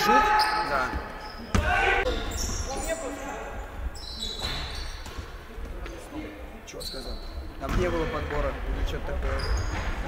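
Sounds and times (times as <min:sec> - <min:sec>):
shoes squeaking on floor: 0:00.1 - 0:05.4, 0:06.7 - 0:08.3, 0:09.2 - 0:10.0.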